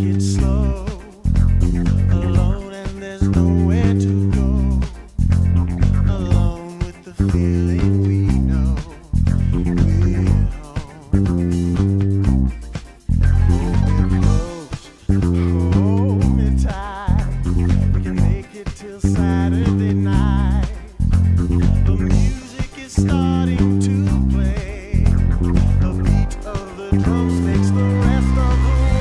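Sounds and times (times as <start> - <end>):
funk band music: 0.0 - 29.0
funk bass guitar line: 0.0 - 29.0.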